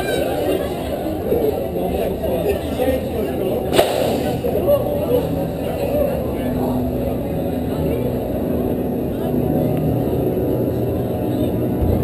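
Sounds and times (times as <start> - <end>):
roller coaster lift rumble: 0.0 - 12.0.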